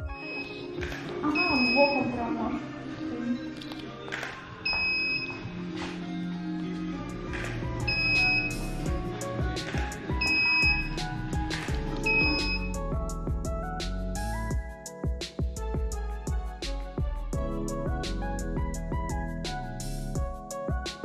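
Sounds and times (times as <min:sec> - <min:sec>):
background music with steady beat: 0:00.0 - 0:21.0.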